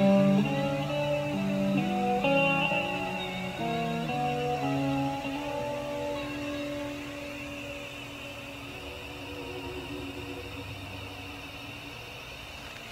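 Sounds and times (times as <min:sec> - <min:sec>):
guitar chord ringing: 0:00.0 - 0:12.1
sweeping hiss: 0:00.0 - 0:12.9.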